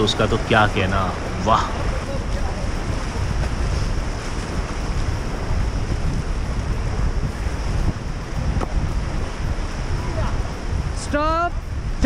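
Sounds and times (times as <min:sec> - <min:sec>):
whitewater rapids rushing: 0:00.0 - 0:12.0
wind buffeting microphone: 0:00.0 - 0:12.0.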